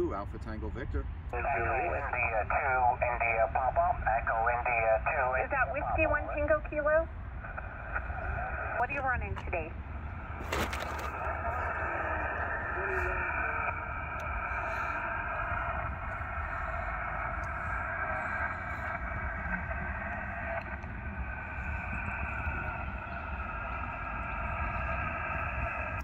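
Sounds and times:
radio static: 1.3s - 26.0s
faint radio voice: 1.4s - 7.0s, 11.2s - 13.8s.

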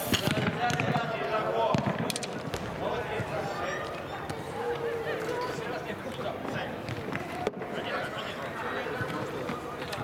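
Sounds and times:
footballers shouting in echoing hall: 0.3s - 10.0s.

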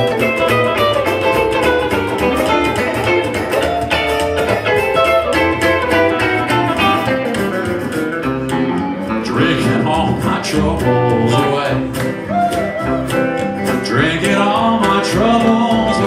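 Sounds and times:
electric and acoustic guitars: 0.0s - 16.0s
plucked upright bass: 0.0s - 16.0s.

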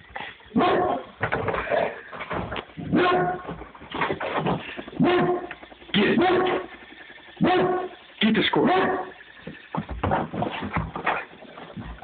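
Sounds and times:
dog barking: 0.6s - 1.0s, 2.9s - 3.5s, 5.0s - 5.5s, 6.2s - 6.7s, 7.4s - 7.9s, 8.6s - 9.2s.

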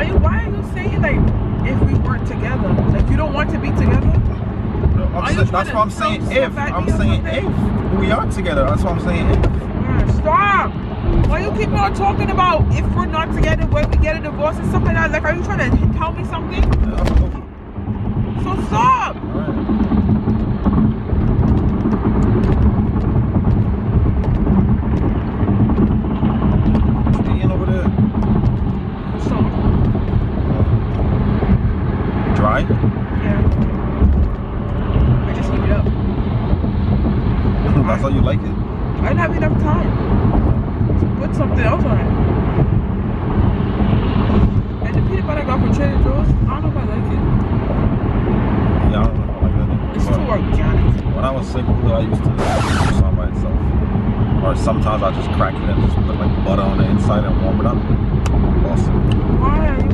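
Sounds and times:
car road and engine noise: 0.0s - 59.9s.

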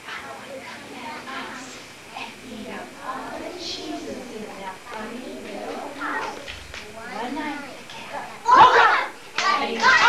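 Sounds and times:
children and woman talking: 0.1s - 10.0s.

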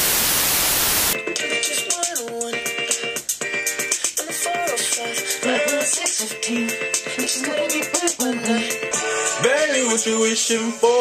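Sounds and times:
white-noise static hiss: 0.0s - 1.2s.

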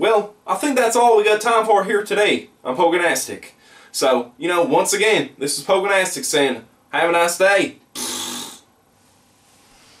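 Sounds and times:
man exhaling forcefully: 8.0s - 8.7s.

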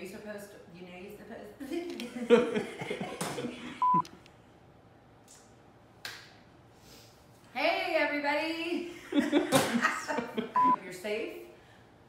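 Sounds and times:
censor bleep: 3.8s - 4.0s, 10.6s - 10.8s
woman laughing while speaking: 8.9s - 10.8s.

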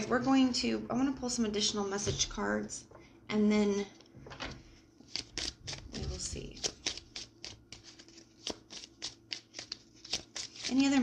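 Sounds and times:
cards being shuffled: 4.4s - 11.0s.

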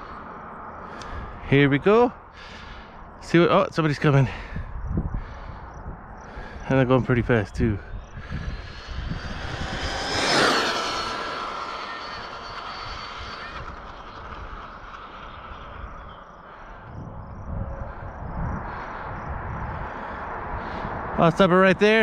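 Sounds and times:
approaching car road noise: 6.3s - 21.5s
electric motor whine: 8.2s - 16.2s.

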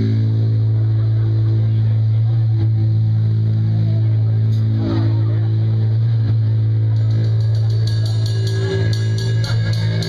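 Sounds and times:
amplified instruments droning: 0.0s - 10.0s.

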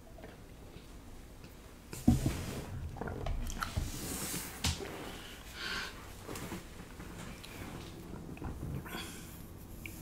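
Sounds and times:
soft breathing: 4.0s - 10.0s.

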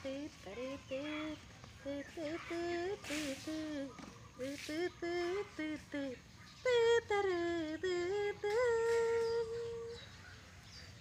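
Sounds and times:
woman humming: 0.0s - 10.0s.

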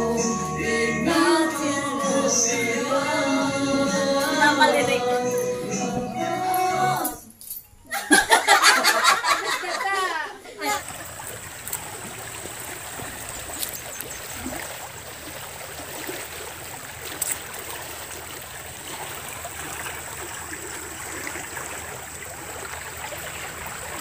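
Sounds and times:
creek water flowing: 8.7s - 24.0s.

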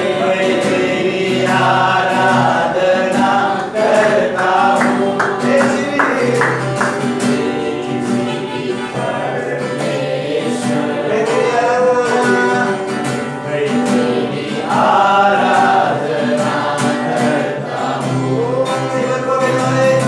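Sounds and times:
men singing worship song: 0.0s - 20.0s
strummed acoustic guitar: 0.0s - 20.0s.

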